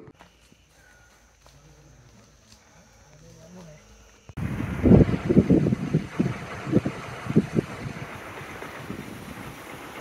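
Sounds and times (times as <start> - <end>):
wind buffeting microphone: 4.4 - 10.0.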